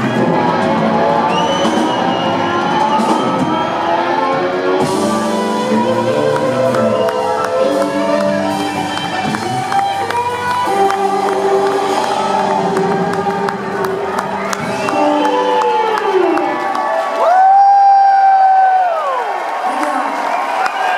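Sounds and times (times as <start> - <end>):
rock band playing: 0.0 - 17.4
crowd cheering and clapping: 0.0 - 20.9
loud high whoop from crowd: 1.2 - 4.9, 13.9 - 20.9.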